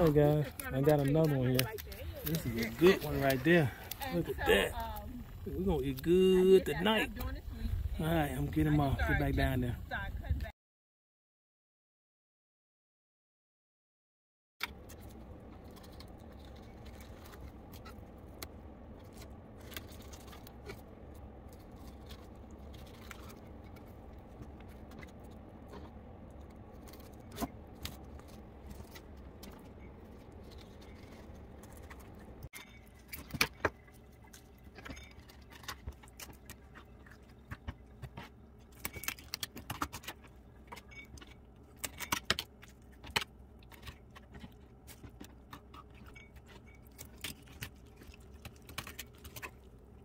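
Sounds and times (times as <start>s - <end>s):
low hum: 14.6s - 50.0s.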